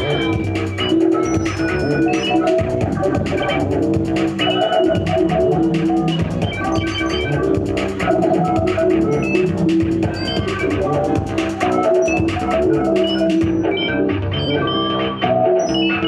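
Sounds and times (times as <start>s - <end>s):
drum machine ticking beat: 0.0s - 14.4s.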